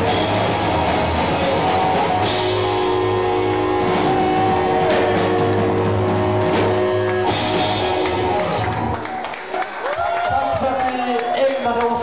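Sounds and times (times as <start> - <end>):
punk band playing: 0.0 - 10.8.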